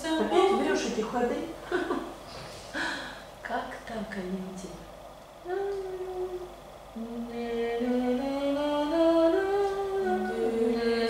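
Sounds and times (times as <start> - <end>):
woman singing unaccompanied: 0.0 - 1.1, 5.4 - 11.0.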